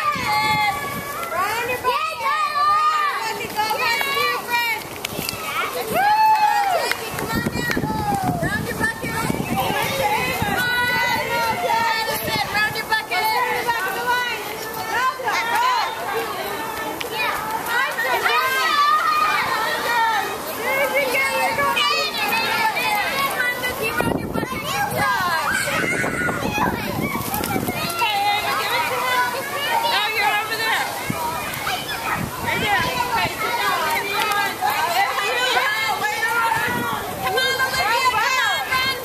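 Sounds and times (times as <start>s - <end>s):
children shouting and cheering: 0.0s - 39.0s.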